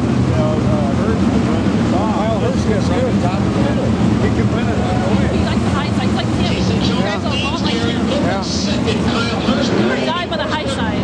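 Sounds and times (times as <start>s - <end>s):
race car engines rumbling: 0.0s - 11.0s
spectators talking: 0.0s - 11.0s.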